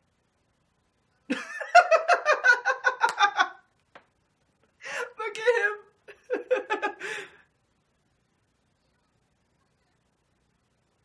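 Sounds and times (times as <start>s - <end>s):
man laughing hard: 1.3s - 3.6s, 6.1s - 7.2s.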